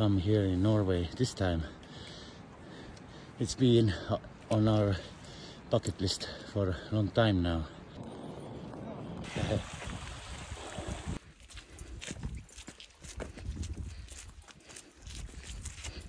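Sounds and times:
footsteps on wet rock: 10.7s - 16.0s.

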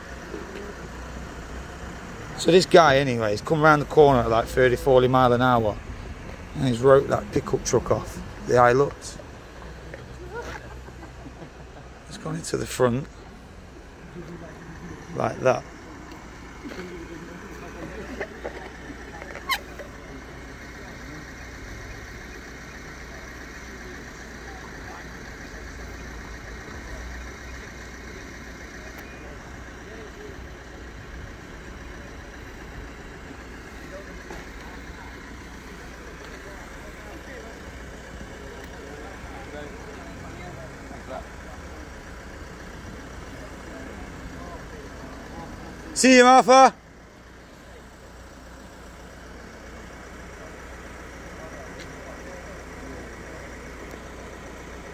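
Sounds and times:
low vehicle rumble: 0.0s - 54.9s
people talking in the street: 0.0s - 54.9s.

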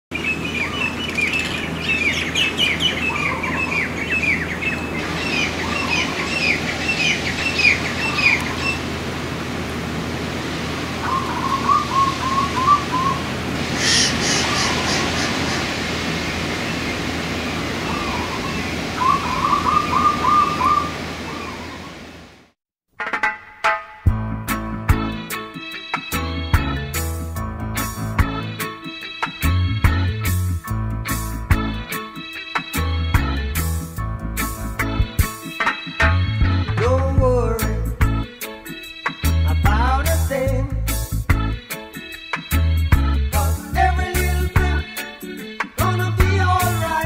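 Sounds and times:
bird trills: 0.1s - 8.8s, 11.0s - 13.2s, 13.8s - 15.7s, 17.8s - 22.0s
birds chirping and singing: 0.1s - 8.8s, 11.0s - 22.1s
sharp bird call: 11.0s - 13.2s, 13.8s - 15.7s, 17.8s - 22.0s.

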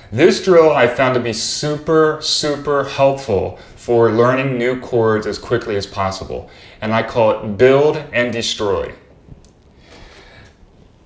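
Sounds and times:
faint breath: 6.5s - 6.8s, 9.7s - 10.6s.

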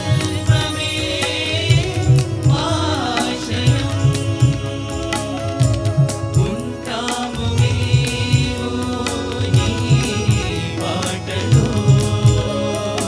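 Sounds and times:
men singing together: 0.0s - 13.0s
rhythmic percussion: 0.0s - 13.0s.

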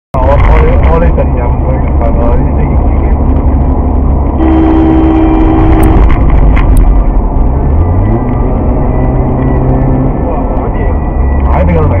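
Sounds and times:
car engine and road rumble: 0.1s - 12.0s
car horn: 4.4s - 6.7s.

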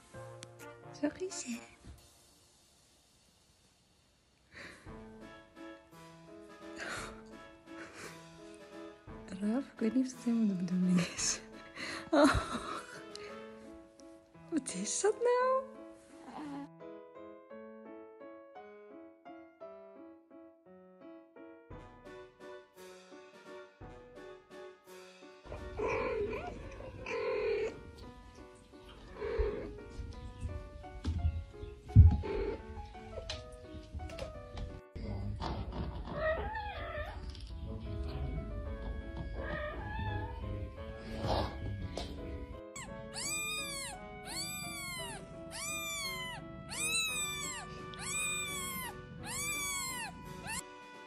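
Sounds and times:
background music: 0.0s - 2.4s, 4.5s - 51.0s
cat meowing: 39.4s - 40.4s, 42.8s - 50.6s
kitten mewing: 42.8s - 50.6s.

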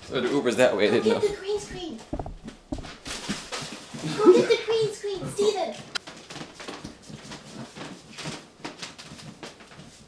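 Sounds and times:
footsteps and shuffling on floor: 0.8s - 4.3s.

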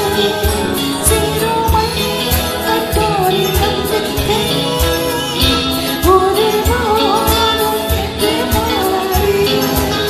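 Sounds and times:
backing music with steady beat: 0.0s - 10.0s
women singing in unison: 0.0s - 10.0s.

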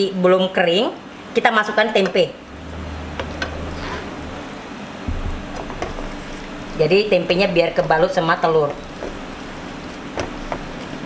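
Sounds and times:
low steady hum: 1.2s - 11.0s.

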